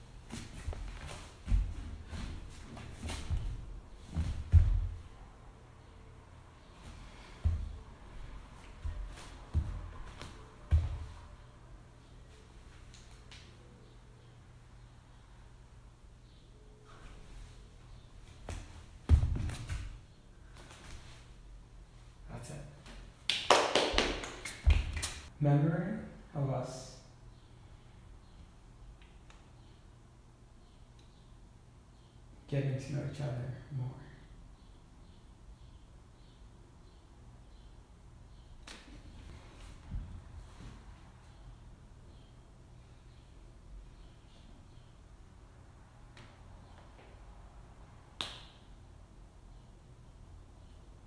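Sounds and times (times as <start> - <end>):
bare foot thud on wooden floor: 0.3 - 5.1, 8.8 - 11.2, 18.5 - 20.0
finger snap: 23.3 - 25.2, 29.0 - 29.5, 38.6 - 39.0, 48.2 - 48.7
sharp hand claps: 23.3 - 25.3, 48.2 - 48.6.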